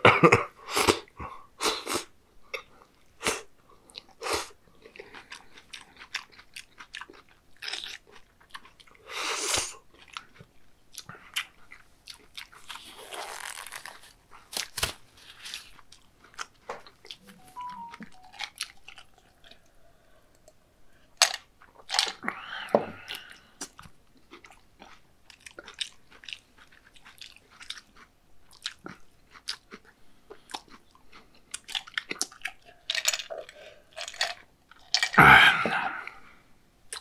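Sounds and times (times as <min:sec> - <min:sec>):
chewing: 0:03.8 - 0:20.6, 0:23.0 - 0:35.2.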